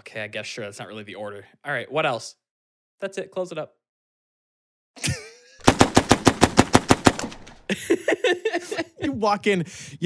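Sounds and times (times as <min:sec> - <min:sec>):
machine-gun fire: 0:05.6 - 0:07.7.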